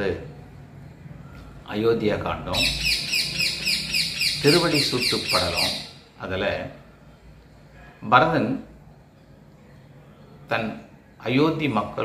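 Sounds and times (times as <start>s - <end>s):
bird high falling chirps: 2.6s - 6.0s.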